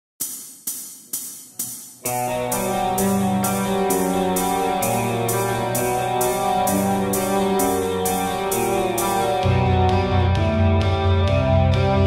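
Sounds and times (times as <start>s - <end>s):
hi-hat strikes: 0.2s - 9.7s.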